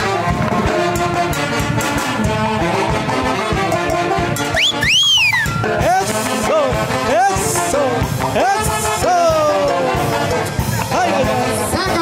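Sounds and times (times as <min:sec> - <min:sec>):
live band playing dance music: 0:00.0 - 0:12.0
high whistle-like tone: 0:04.4 - 0:05.7.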